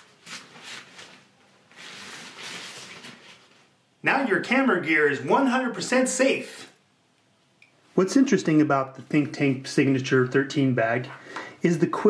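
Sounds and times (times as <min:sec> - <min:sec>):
fabric rain cover rustling: 0:00.0 - 0:03.8.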